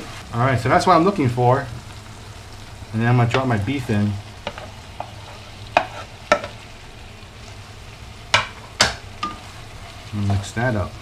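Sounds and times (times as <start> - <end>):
gravy sizzling in a pan: 0.0 - 11.0
wooden spatula scraping and knocking: 4.4 - 6.6.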